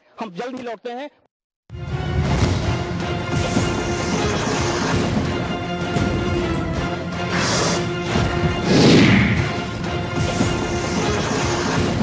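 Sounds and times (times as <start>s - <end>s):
theme music with held tones: 1.7s - 12.0s.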